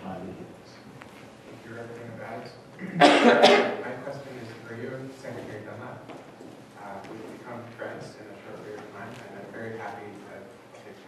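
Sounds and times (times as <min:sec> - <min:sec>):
man speaking into a microphone: 0:06.8 - 0:11.0.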